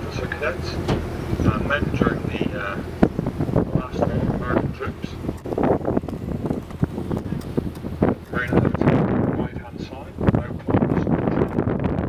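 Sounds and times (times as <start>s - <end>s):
indistinct voices: 0.0s - 6.0s, 7.1s - 11.8s
low boat rumble: 0.0s - 12.0s
wind buffeting microphone: 0.0s - 12.0s.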